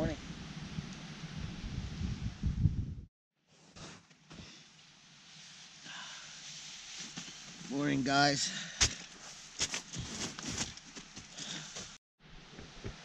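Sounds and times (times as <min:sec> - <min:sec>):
steady outdoor hiss: 0:00.0 - 0:02.5, 0:03.5 - 0:13.0
wind gusting on microphone: 0:00.0 - 0:03.1.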